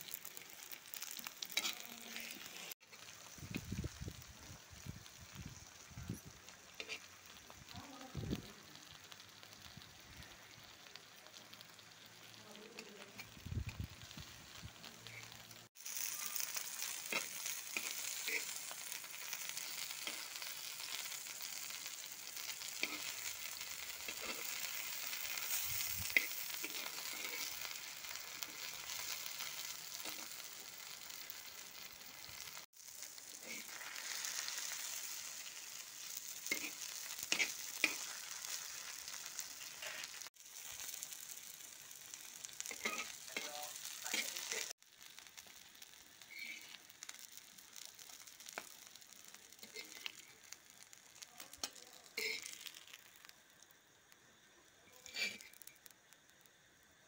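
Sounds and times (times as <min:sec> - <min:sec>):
fish sizzling in oil: 0:00.0 - 0:57.0.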